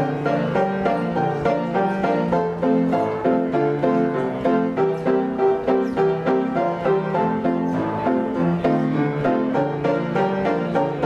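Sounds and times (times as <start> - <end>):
player piano playing chords: 0.0 - 11.0.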